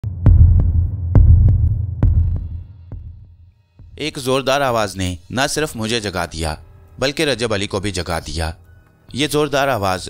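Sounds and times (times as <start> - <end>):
heartbeat double thumps: 0.0 - 4.0
low hum: 0.0 - 4.0.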